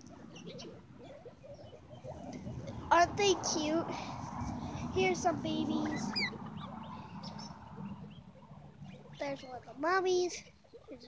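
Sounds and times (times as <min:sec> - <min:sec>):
guinea pigs squeaking: 0:00.0 - 0:02.5, 0:05.1 - 0:10.0.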